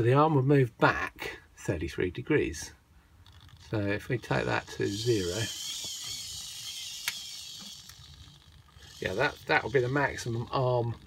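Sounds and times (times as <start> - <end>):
servo gear whine: 4.2 - 11.0
sharp click: 6.9 - 8.0.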